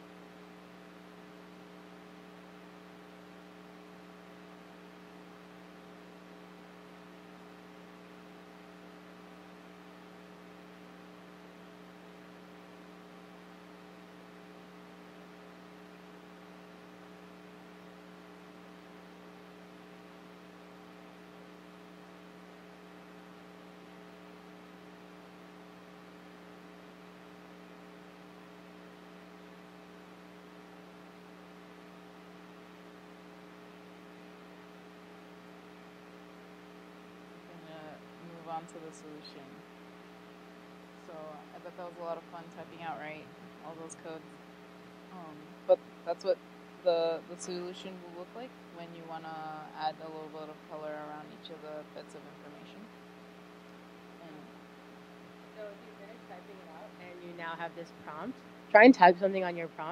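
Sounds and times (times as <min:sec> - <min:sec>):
electrical mains hum: 0:00.0 - 0:59.9.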